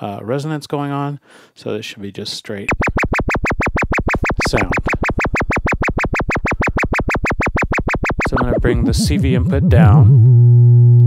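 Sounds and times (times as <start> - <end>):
fast warbling sine tone: 2.7 - 10.7.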